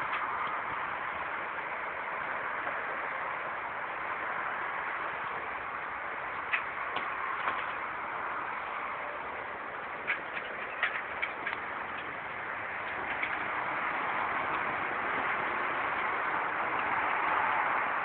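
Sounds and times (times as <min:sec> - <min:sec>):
outdoor background noise: 0:00.0 - 0:18.0.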